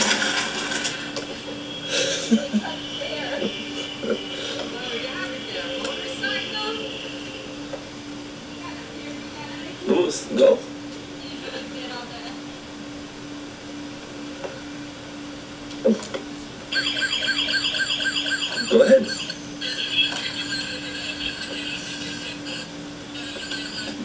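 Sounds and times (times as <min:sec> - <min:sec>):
toy electronic siren: 0:16.7 - 0:24.0.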